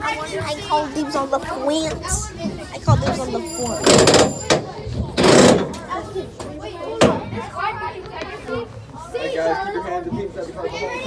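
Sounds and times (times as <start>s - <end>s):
indistinct voices talking: 0.0s - 8.8s
burst of noise near microphone: 1.9s - 8.5s.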